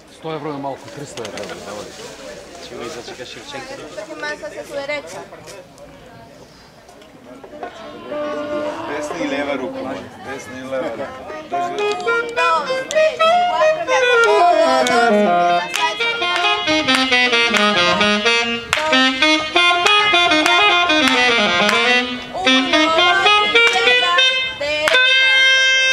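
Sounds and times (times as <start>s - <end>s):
live band playing dance tune: 11.4s - 25.7s.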